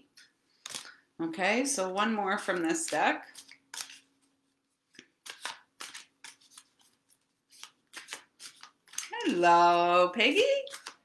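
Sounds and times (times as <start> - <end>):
cards being shuffled: 0.6 - 1.0, 2.4 - 11.0.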